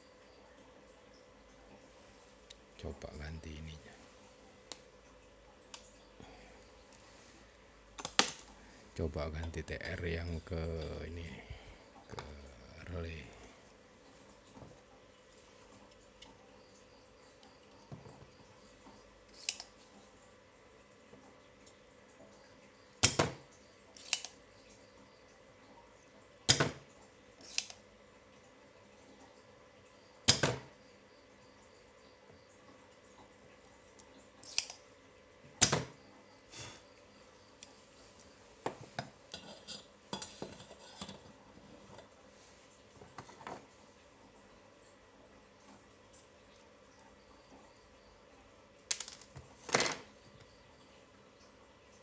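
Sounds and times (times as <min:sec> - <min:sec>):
desoldering pump snapping: 0:08.0 - 0:08.4, 0:24.0 - 0:24.4, 0:34.4 - 0:34.8.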